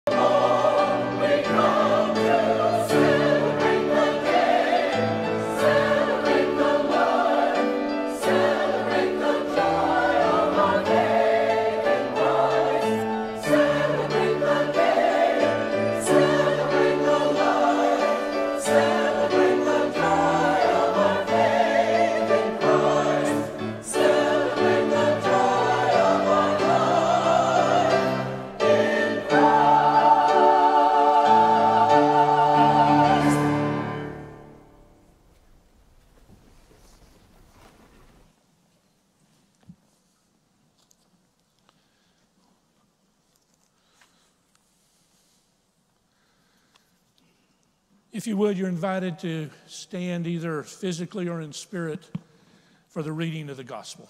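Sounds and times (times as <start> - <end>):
church choir singing: 0.0 - 35.0.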